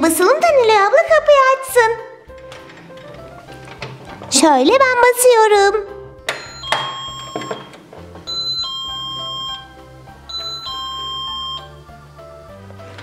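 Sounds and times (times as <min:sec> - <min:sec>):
soft background music: 0:00.0 - 0:13.0
electronic doorbell chime: 0:06.3 - 0:11.9.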